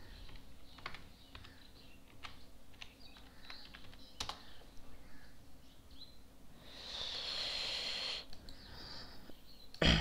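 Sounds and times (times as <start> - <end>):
computer keyboard typing: 0.2 - 4.4.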